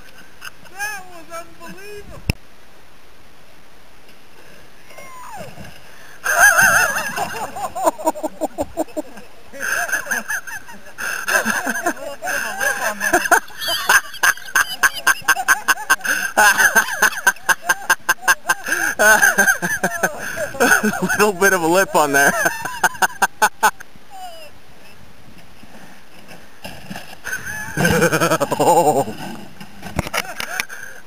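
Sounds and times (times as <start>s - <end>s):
man laughing breathlessly: 6.2s - 21.4s, 27.3s - 29.2s
person yelling and laughing: 27.8s - 29.2s.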